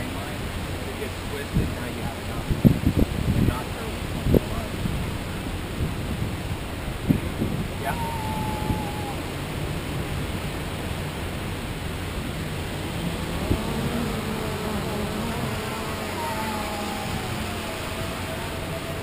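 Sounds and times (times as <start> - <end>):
surf: 0.0 - 19.0
wind noise: 0.0 - 19.0
drone motors whining: 7.8 - 9.4, 12.8 - 19.0.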